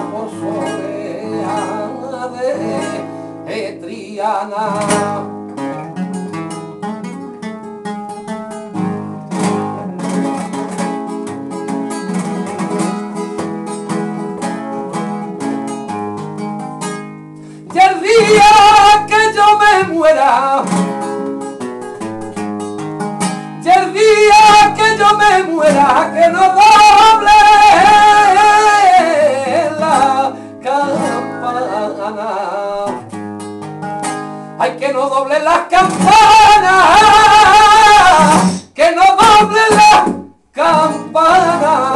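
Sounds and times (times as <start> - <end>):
flamenco acoustic guitar: 0.0 - 41.9.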